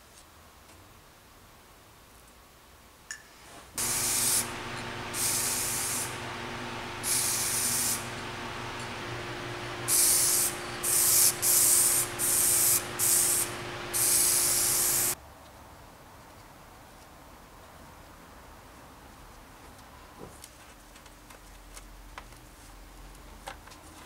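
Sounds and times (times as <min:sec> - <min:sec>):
spray paint can hissing: 0:03.8 - 0:15.2
steady low hum: 0:03.8 - 0:15.2.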